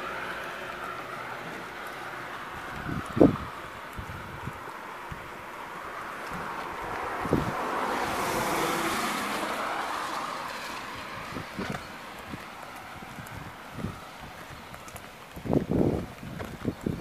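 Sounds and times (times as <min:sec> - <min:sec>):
car tyres hissing on wet road: 0:00.0 - 0:16.4
footsteps on wet pavement: 0:00.0 - 0:17.0
wind buffeting microphone: 0:00.8 - 0:17.0.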